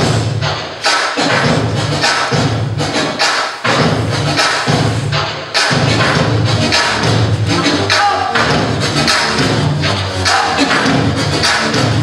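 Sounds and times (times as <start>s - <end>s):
hip-hop music over speakers: 0.0s - 12.0s.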